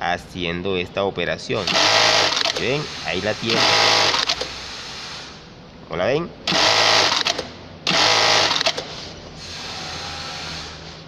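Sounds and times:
sewing machine stitching: 1.6 - 2.8, 6.5 - 8.9.

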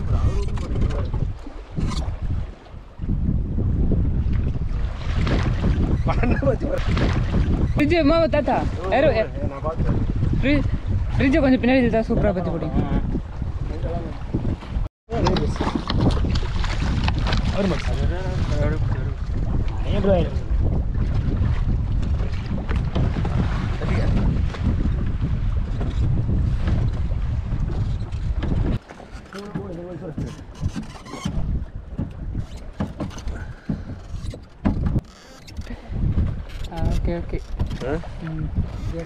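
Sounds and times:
boat motor rumble: 0.0 - 39.0
wind on microphone: 0.0 - 39.0
knocks: 29.3 - 35.1.

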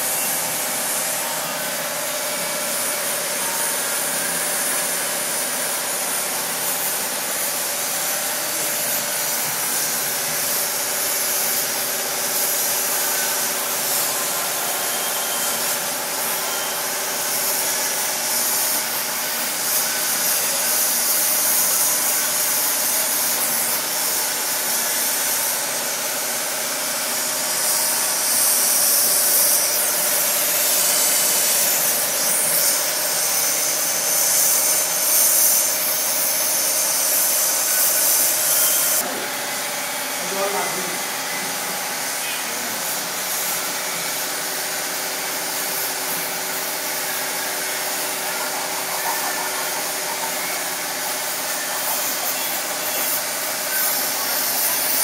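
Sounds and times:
gas torch hissing: 0.0 - 55.0.

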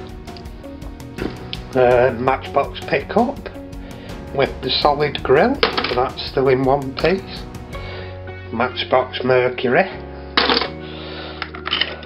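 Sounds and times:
music with held notes: 0.0 - 12.0.

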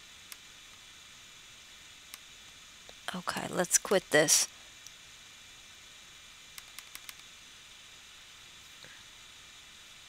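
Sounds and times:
faint steady hiss: 0.0 - 10.0
computer mouse clicks: 6.5 - 7.3.

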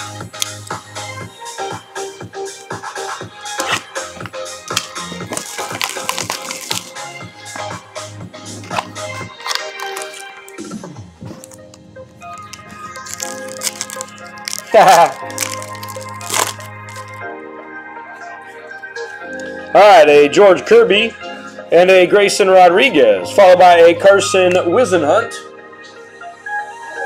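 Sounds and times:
background music with beat and bass: 0.0 - 21.9
person laughing: 14.5 - 15.3.

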